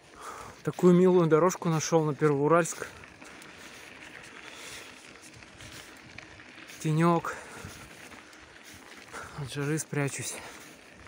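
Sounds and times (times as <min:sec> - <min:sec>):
bicycle tyres on rough road: 0:00.0 - 0:11.0.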